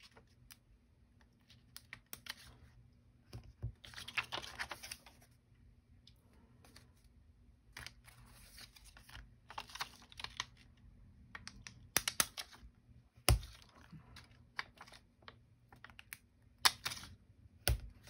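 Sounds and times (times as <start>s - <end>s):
cards shuffling and rustling: 1.3s - 2.7s, 3.3s - 5.4s, 6.6s - 10.7s, 11.4s - 12.6s, 13.3s - 18.0s.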